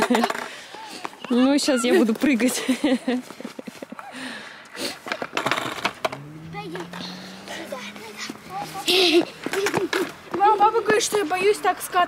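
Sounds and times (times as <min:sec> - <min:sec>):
skateboard clacking on concrete: 0:00.0 - 0:01.5, 0:09.4 - 0:11.5
skateboard wheels rolling: 0:00.0 - 0:02.2, 0:04.8 - 0:11.9.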